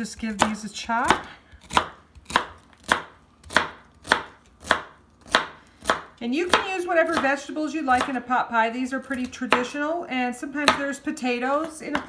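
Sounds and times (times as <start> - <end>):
knife chopping celery: 0.0 - 8.2, 11.6 - 12.0.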